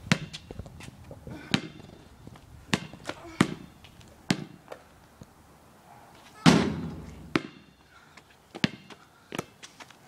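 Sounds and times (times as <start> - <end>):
basketball bouncing on concrete: 0.0 - 0.8, 1.4 - 4.8, 6.4 - 7.8, 8.5 - 9.5.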